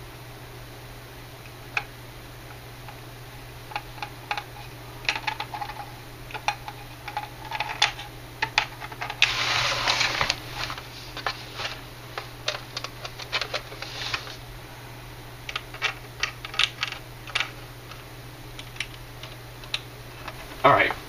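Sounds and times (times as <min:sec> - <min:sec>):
plastic parts clicking and tapping: 0:03.7 - 0:09.2, 0:18.6 - 0:20.4.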